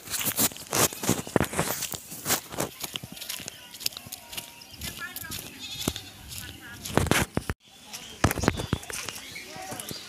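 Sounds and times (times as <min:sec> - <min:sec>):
footsteps on dry ground: 0:00.0 - 0:10.0.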